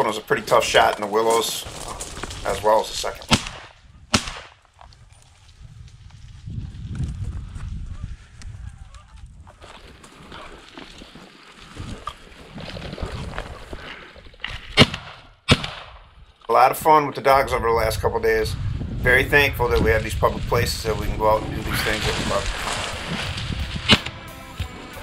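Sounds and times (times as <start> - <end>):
shotgun shots: 3.3 - 4.6, 14.7 - 16.0, 23.8 - 24.2.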